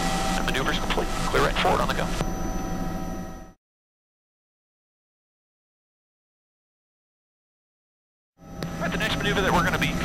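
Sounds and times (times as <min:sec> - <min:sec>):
helicopter turbine and rotor hiss: 0:00.0 - 0:03.6, 0:08.4 - 0:10.0.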